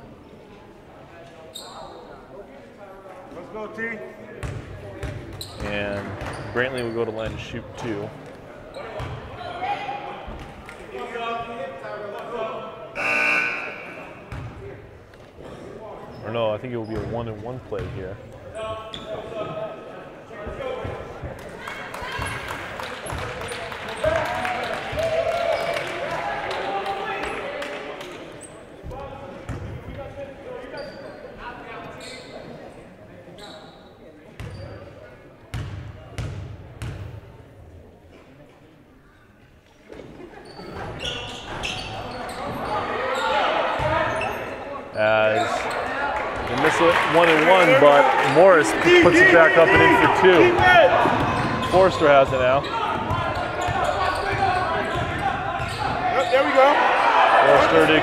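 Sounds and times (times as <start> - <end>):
crowd chatter: 0.0 - 58.0.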